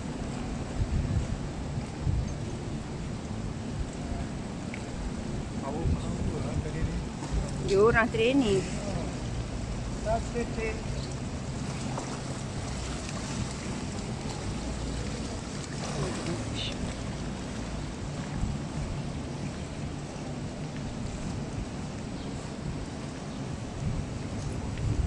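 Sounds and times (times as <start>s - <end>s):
water lapping at pool edge: 0.0s - 25.0s.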